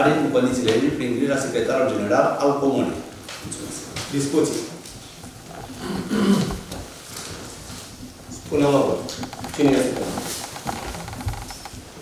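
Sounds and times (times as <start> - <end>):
paper rustling: 6.5 - 11.7.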